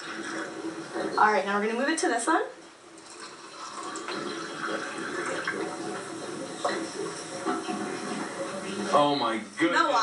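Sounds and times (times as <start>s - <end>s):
water pouring into paper cup: 0.0s - 1.2s, 3.0s - 9.1s.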